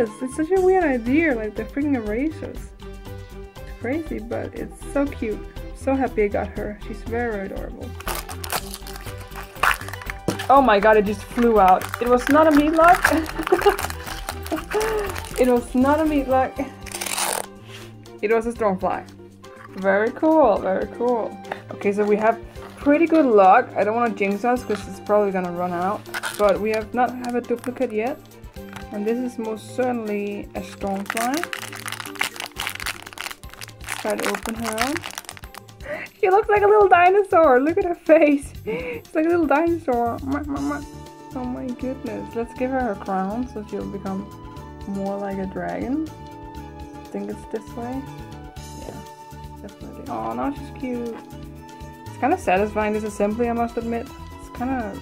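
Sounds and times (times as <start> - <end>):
background music: 0.0 - 55.0
plastic wrapper crinkling and tearing: 7.9 - 15.8, 16.8 - 17.5, 26.0 - 29.0, 30.6 - 35.8.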